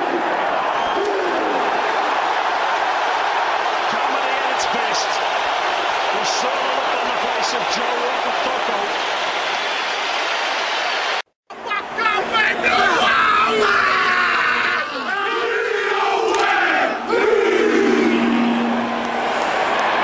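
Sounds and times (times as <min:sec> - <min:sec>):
stadium crowd noise: 0:00.0 - 0:20.0
shouted calls and chanted responses: 0:11.7 - 0:18.6.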